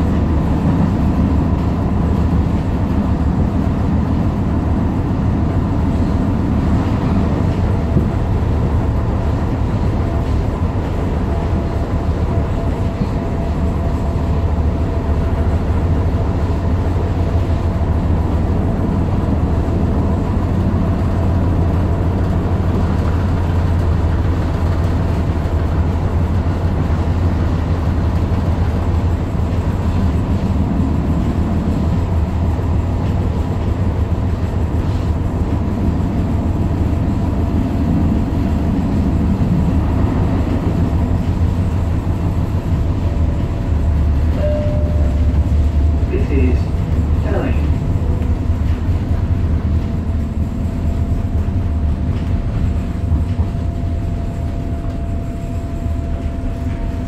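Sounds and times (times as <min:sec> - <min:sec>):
train wheels rumbling: 0:00.0 - 0:57.0.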